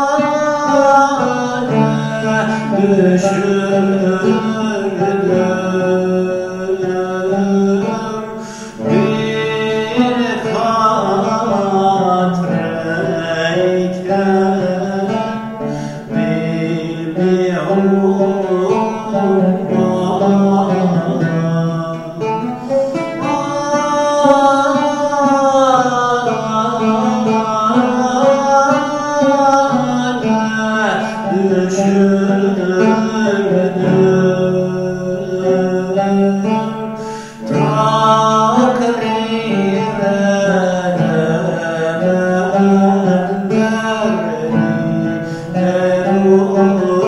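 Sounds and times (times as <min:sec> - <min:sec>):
man singing long held notes: 0:00.0 - 0:47.0
plucked lute: 0:00.0 - 0:47.0.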